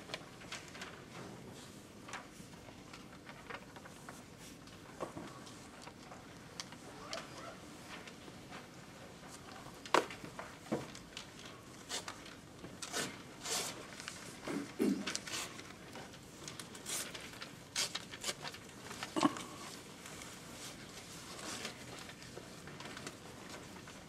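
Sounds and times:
paper rustling: 0.0s - 24.0s.

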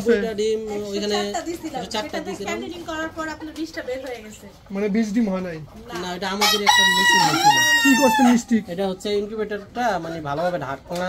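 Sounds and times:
rooster crowing: 6.4s - 8.4s.

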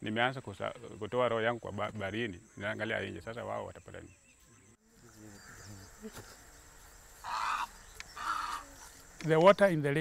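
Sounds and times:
faint outdoor ambience: 0.0s - 10.0s
harsh animal call: 7.2s - 8.8s.

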